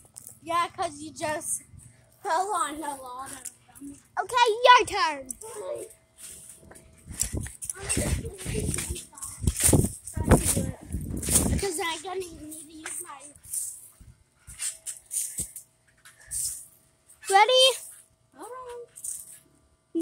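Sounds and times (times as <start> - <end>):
child's wordless voice: 0.4 - 5.9, 7.7 - 10.9, 11.5 - 13.4
phone rumbling and crackling: 6.6 - 16.3.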